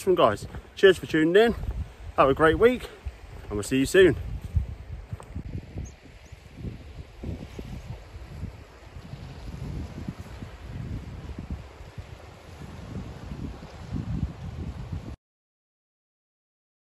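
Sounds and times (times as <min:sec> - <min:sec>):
wind buffeting microphone: 0:00.0 - 0:15.2
sea washing on pebble shore: 0:06.4 - 0:15.1.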